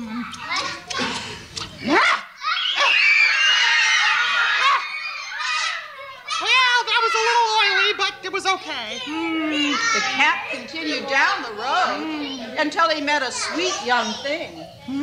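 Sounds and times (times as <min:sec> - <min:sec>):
children calling out and shrieking: 0:01.8 - 0:08.2, 0:08.9 - 0:10.9, 0:13.3 - 0:15.0.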